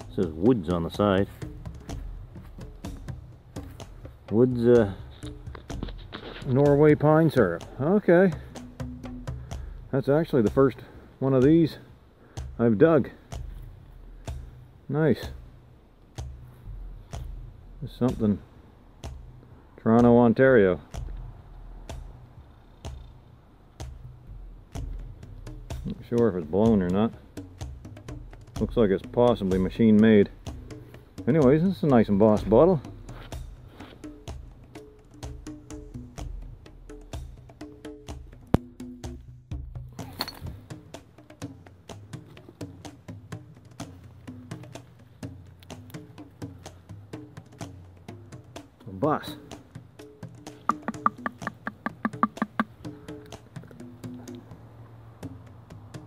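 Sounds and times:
background music with wood-block beat: 0:00.0 - 0:56.0
sharp clicks and knocks: 0:50.7 - 0:53.7.

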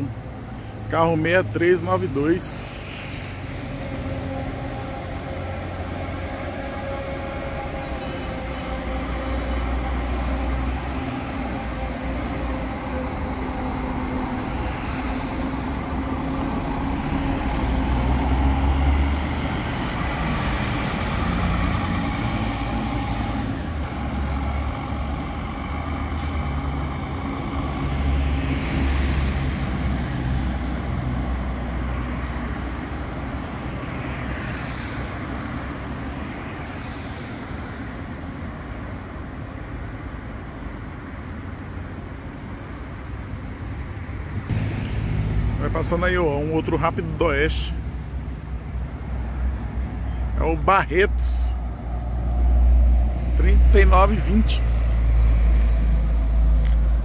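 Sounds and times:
diesel bus engine rumble: 0:00.0 - 0:34.3.

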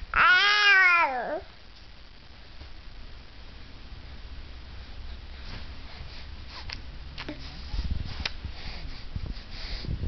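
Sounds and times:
baby's high-pitched gliding vocal: 0:00.1 - 0:01.5.

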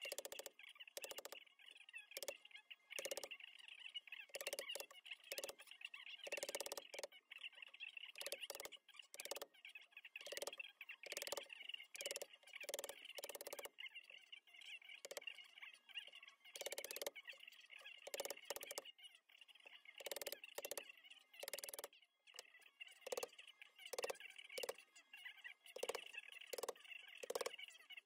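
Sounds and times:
wooden mallet striking chisel: 0:21.4 - 0:21.9.

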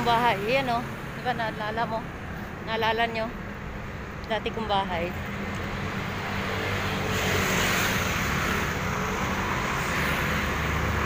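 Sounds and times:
road noise: 0:00.0 - 0:11.0
motor scooters passing: 0:05.1 - 0:11.0.

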